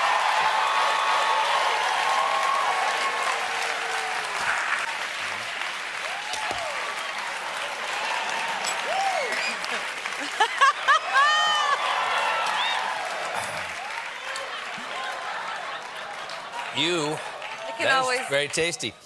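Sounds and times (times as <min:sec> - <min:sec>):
whoops: 0:00.0 - 0:04.8, 0:06.0 - 0:14.0
audience applauding and cheering: 0:00.0 - 0:19.0
audience laughter: 0:09.4 - 0:11.9, 0:14.2 - 0:17.4.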